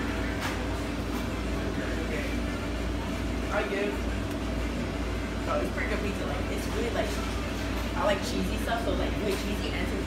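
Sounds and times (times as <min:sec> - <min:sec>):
low indoor room hum: 0:00.0 - 0:10.0.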